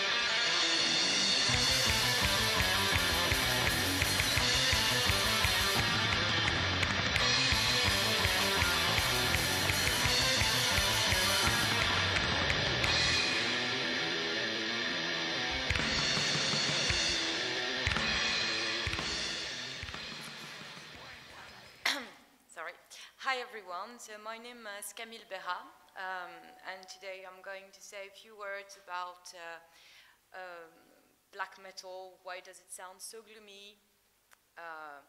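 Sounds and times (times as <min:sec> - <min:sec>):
metal music with fast drumming: 0:00.0 - 0:21.8.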